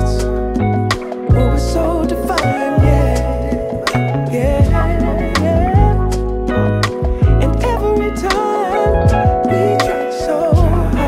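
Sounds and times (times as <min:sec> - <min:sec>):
deep bass notes: 0:00.0 - 0:11.0
slow song: 0:00.0 - 0:11.0
wavering melody line: 0:00.0 - 0:11.0.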